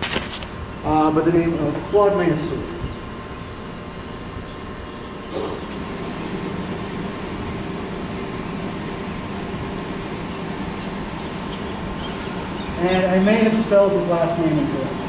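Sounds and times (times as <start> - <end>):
low room rumble: 0.0 - 15.0.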